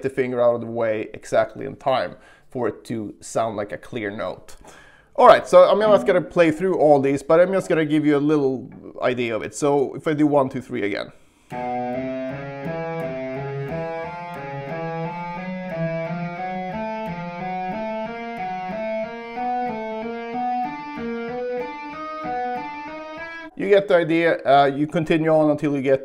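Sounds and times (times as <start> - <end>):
electric guitar legato notes: 5.8 - 6.7, 11.5 - 23.6.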